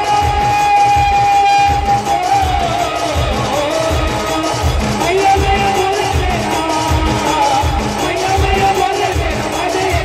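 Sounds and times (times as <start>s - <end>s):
low drum beat: 0.0s - 10.0s.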